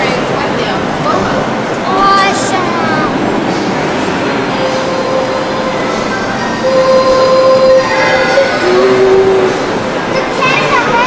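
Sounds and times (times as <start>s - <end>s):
rail car running noise: 0.0s - 11.0s
steady whine: 1.2s - 11.0s.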